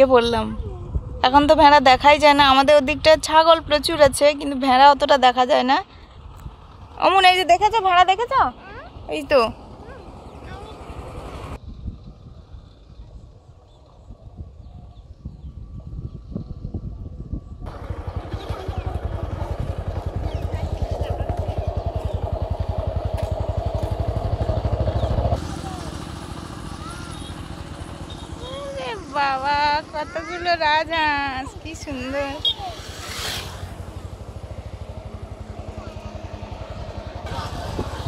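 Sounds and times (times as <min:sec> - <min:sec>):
vehicle engine running: 0:00.0 - 0:14.5, 0:15.6 - 0:38.0.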